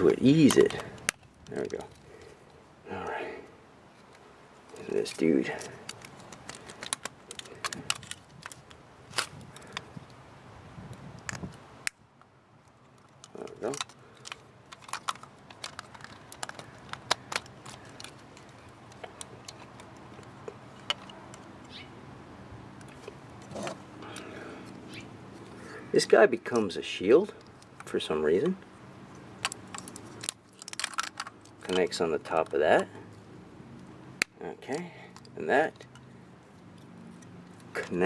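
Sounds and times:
plastic toy parts clicking: 0:05.8 - 0:09.8, 0:13.0 - 0:21.5, 0:29.4 - 0:32.5.

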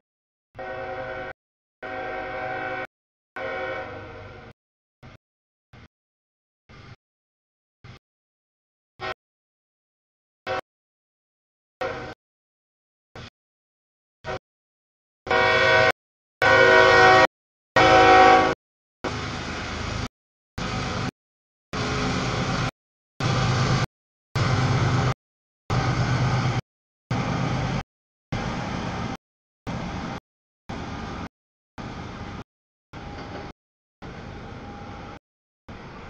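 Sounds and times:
locomotive air horn blasts: 0:00.6 - 0:04.5, 0:11.8 - 0:12.2, 0:15.3 - 0:18.6.

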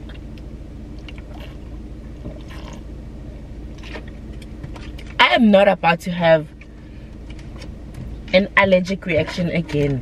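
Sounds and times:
car engine idling: 0:00.0 - 0:10.0
person swallowing water: 0:01.0 - 0:02.9.

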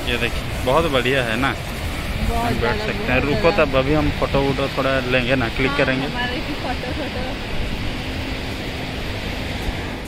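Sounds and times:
sea surf washing up the shore: 0:00.0 - 0:10.0.

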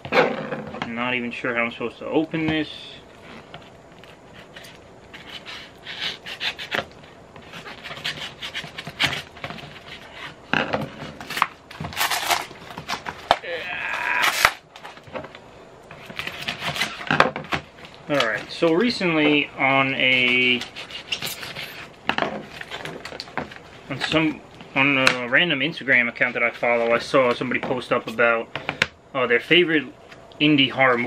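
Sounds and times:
paper package rustling: 0:11.0 - 0:13.4
paper ripping: 0:11.1 - 0:13.4, 0:14.0 - 0:15.0.

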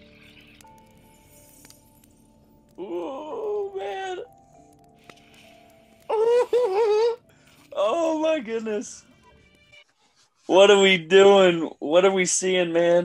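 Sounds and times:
person wailing without words: 0:02.8 - 0:04.3, 0:06.0 - 0:08.9.

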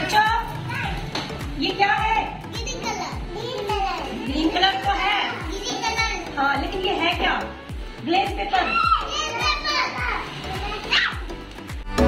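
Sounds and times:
young children chattering: 0:02.6 - 0:06.4
background music with beat: 0:05.3 - 0:08.2, 0:08.8 - 0:12.0.

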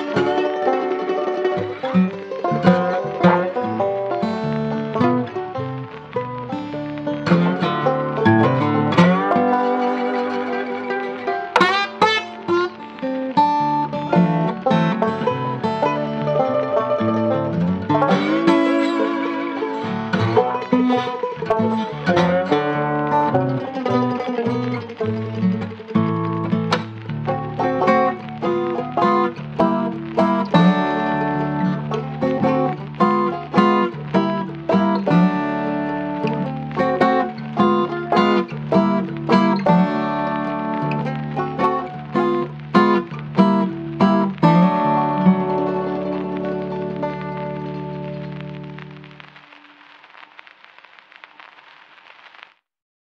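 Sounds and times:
instrumental jazz-blues music: 0:00.0 - 0:50.5.

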